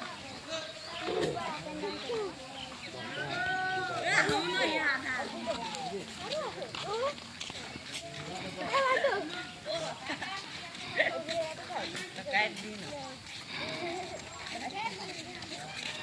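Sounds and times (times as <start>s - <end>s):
people talking and calling out: 0.0s - 16.0s.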